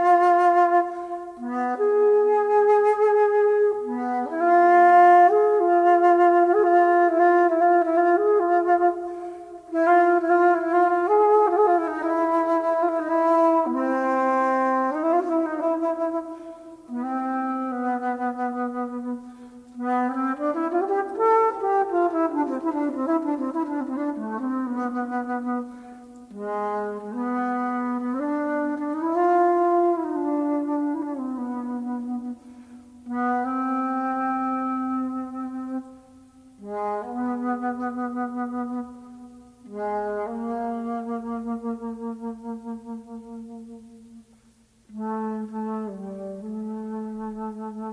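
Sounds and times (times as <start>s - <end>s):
jazz flute: 0.0s - 47.9s
flute player breaths: 9.0s - 9.6s, 16.3s - 16.8s, 19.2s - 19.8s, 25.7s - 26.2s, 32.4s - 33.0s, 44.2s - 44.9s.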